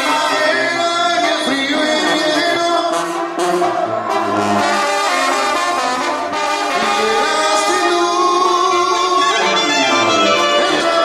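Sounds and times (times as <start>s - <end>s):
brass band playing: 0.0s - 11.0s
sousaphone bass line: 6.8s - 11.0s.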